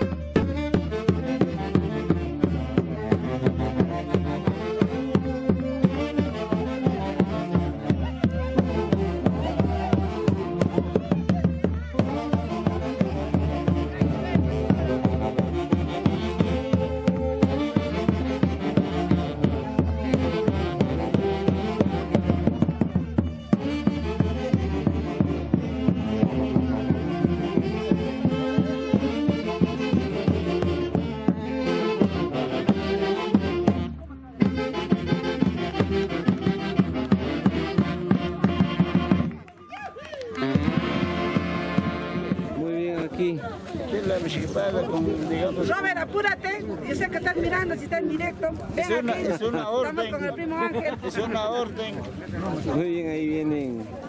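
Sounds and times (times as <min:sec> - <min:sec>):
steady drum beat: 0:00.0 - 0:39.4
live band festival music: 0:00.0 - 0:54.0
saxophone: 0:40.0 - 0:42.5.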